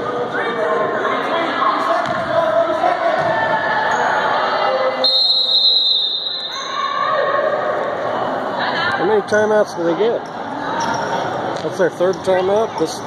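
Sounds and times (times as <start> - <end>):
spectators' voices: 0.0 - 13.0
high-pitched referee whistle: 5.0 - 6.9.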